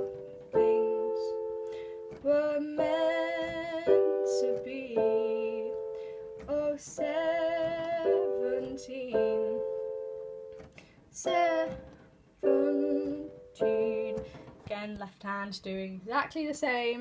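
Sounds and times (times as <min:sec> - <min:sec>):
electronic keyboard chords: 0:00.0 - 0:14.4.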